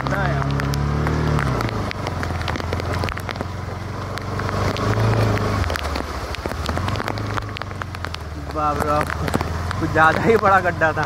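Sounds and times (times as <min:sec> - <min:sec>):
motorcycle engine running: 0:00.0 - 0:11.0
rain ticking and crackling: 0:00.0 - 0:11.0.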